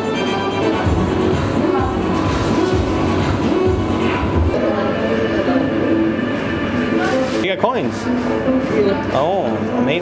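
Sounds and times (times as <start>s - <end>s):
music with bass beat: 0.8s - 4.5s.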